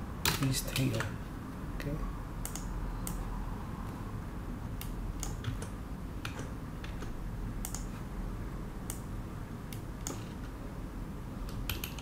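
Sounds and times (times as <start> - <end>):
low steady hum: 0.0 - 12.0
computer keyboard key clicks: 7.7 - 7.9, 11.5 - 12.0.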